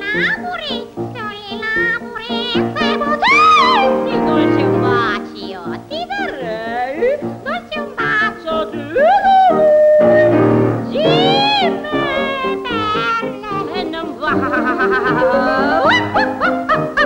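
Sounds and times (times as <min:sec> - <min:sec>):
piano accompaniment: 0:00.0 - 0:17.0
soprano singing: 0:00.0 - 0:17.0
person laughing: 0:14.2 - 0:17.0.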